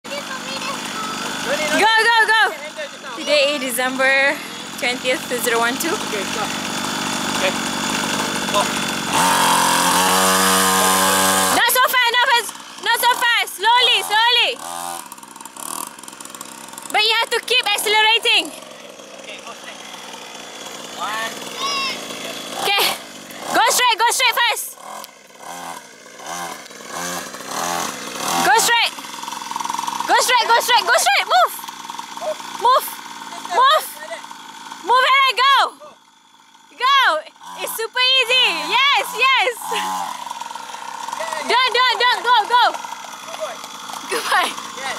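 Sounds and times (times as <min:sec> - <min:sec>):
small two-stroke engine revving: 0:00.0 - 0:44.9
people shouting: 0:30.2 - 0:31.5.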